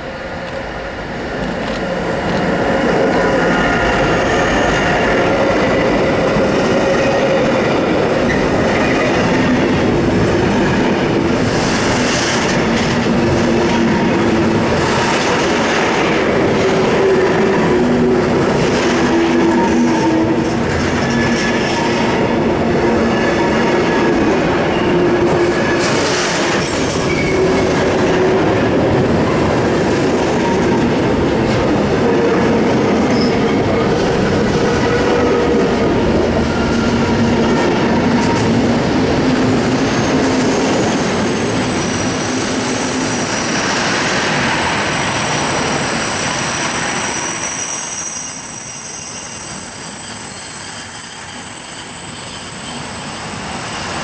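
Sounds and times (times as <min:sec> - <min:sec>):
steel wheels rumbling on rail: 0:00.0 - 0:54.0.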